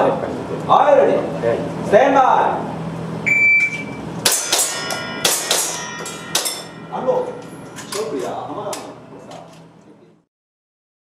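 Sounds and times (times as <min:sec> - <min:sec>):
bb hitting steel plate clang: 0:04.3 - 0:07.5.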